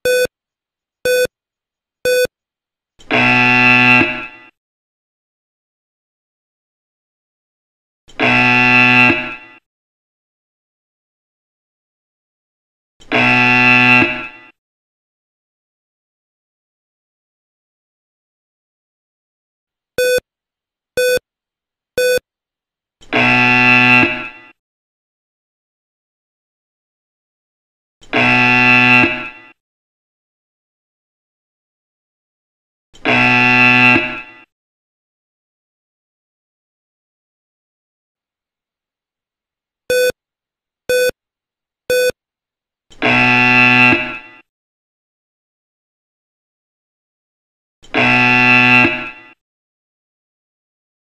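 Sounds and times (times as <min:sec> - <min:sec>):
buzzer tone: 0:00.0 - 0:00.3, 0:01.1 - 0:01.3, 0:02.1 - 0:02.3, 0:03.0 - 0:04.5, 0:08.1 - 0:09.6, 0:13.0 - 0:14.5, 0:20.0 - 0:20.2, 0:21.0 - 0:21.2, 0:22.0 - 0:22.2, 0:23.0 - 0:24.6, 0:28.0 - 0:29.6, 0:33.0 - 0:34.5, 0:39.9 - 0:40.2, 0:40.9 - 0:41.1, 0:41.9 - 0:42.2, 0:43.0 - 0:44.4, 0:47.8 - 0:49.4
short electronic beeps: 0:00.0 - 0:00.3, 0:01.1 - 0:01.3, 0:02.1 - 0:02.3, 0:20.0 - 0:20.2, 0:21.0 - 0:21.2, 0:22.0 - 0:22.2, 0:39.9 - 0:40.1, 0:40.9 - 0:41.1, 0:41.9 - 0:42.2.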